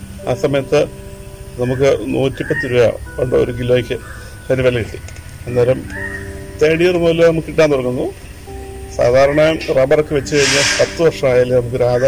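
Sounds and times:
man talking: 0.2s - 0.9s, 1.6s - 5.9s, 9.0s - 12.0s.

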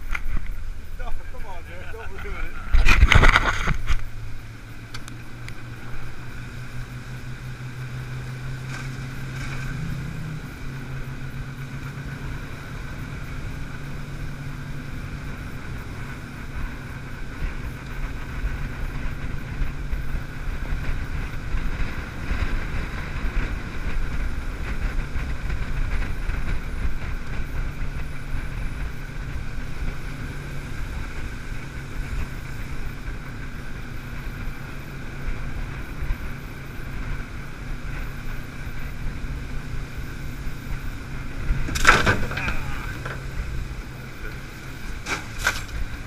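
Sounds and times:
small boat motor running: 0.0s - 46.0s
wind noise on microphone: 0.0s - 46.0s.

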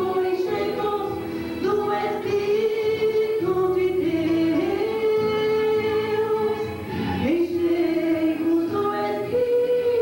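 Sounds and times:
woman singing hymn through pa: 0.0s - 10.0s.

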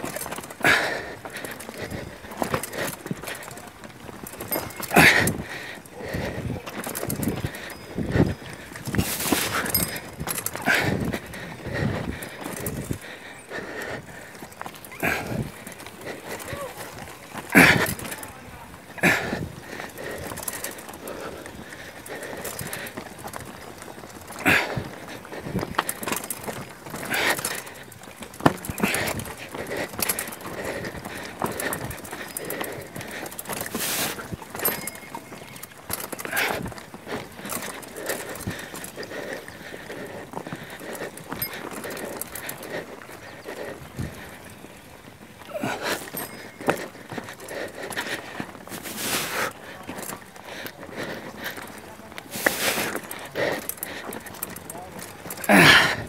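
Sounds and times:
bike tyres grinding over stones: 0.0s - 56.0s
bike knocks and rattles: 22.1s - 39.0s.

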